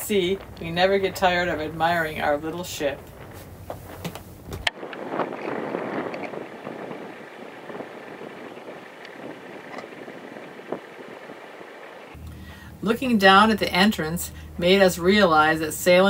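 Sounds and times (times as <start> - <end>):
low rumble: 0.0 - 16.0
wind rushing over microphone: 0.0 - 16.0.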